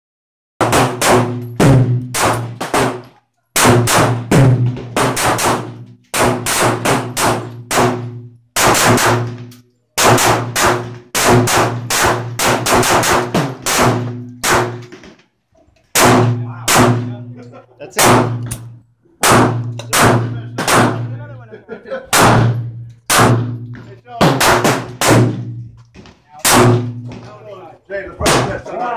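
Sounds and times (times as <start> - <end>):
pistol shots: 0.6 - 15.0, 15.9 - 17.2, 18.0 - 21.1, 22.1 - 25.6, 26.4 - 27.0.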